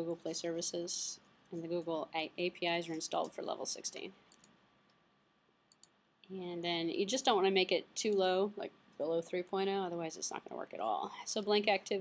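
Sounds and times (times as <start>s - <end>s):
computer mouse clicks: 4.3s - 5.0s, 5.7s - 6.0s.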